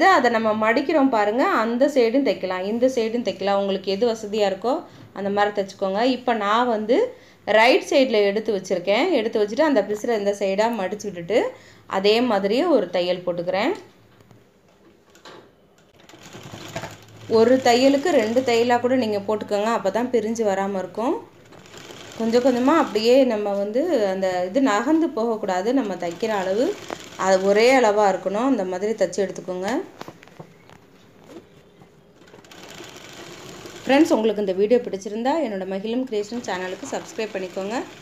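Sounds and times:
sewing machine clicking: 15.8 - 18.7, 21.4 - 23.2, 25.8 - 28.0, 32.2 - 34.2, 36.1 - 38.0.

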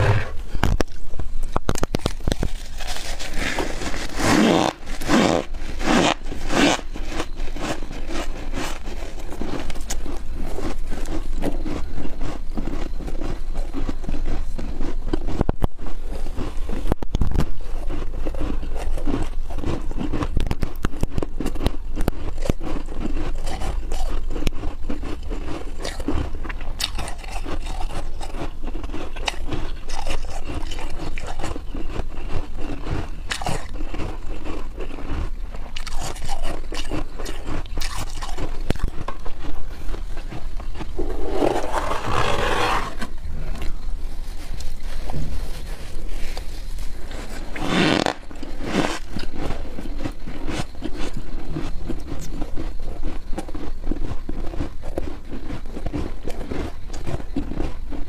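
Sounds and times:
chewing crunchy ice: 0.0 - 58.0.

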